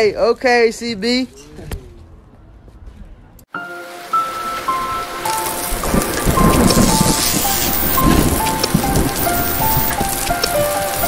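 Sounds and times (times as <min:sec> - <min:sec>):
slow melody of held notes: 0:03.5 - 0:11.0
rain hiss: 0:03.6 - 0:11.0
low thunder rumble with crackles: 0:05.1 - 0:11.0.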